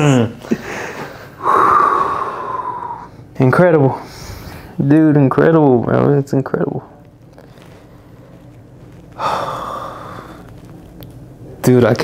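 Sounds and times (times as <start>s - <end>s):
man gasping: 0.0s - 3.1s.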